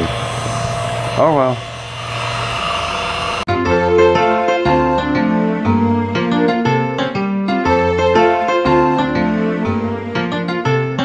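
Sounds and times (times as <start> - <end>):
milling machine humming: 0.0 - 3.5
piano music: 3.5 - 11.0.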